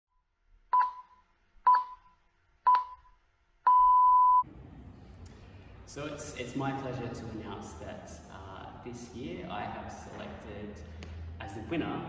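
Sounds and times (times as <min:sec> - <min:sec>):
electronic countdown beeps: 0:00.7 - 0:02.1, 0:02.7 - 0:03.1, 0:03.7 - 0:04.4.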